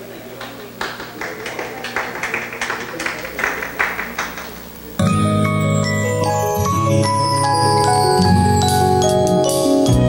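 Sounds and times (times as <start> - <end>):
small audience clapping: 0.0 - 5.0.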